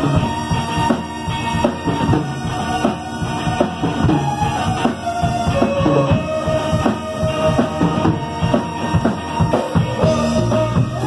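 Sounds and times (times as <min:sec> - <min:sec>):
bass guitar: 0:00.0 - 0:11.0
drum kit beating: 0:00.0 - 0:11.0
electric guitars: 0:00.0 - 0:11.0.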